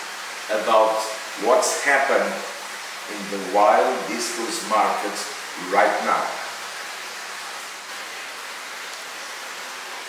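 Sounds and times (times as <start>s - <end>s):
water rushing through filter: 0.0s - 10.0s.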